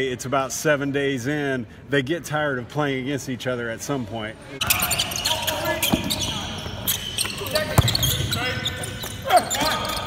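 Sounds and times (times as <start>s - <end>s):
basketball bouncing on hardwood: 7.8s - 8.2s.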